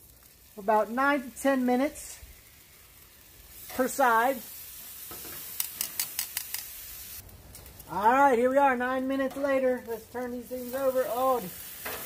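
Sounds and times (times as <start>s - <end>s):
steaks sizzling on grill: 0.0s - 12.0s
metal tongs clicking: 5.6s - 6.7s.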